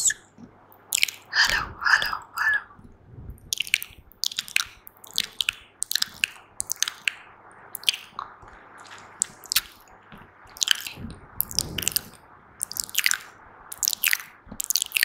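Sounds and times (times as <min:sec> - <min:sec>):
lip smacks: 0:00.0 - 0:09.9, 0:10.5 - 0:15.0
tongue clicks: 0:00.9 - 0:02.8, 0:03.4 - 0:08.3, 0:10.5 - 0:15.0.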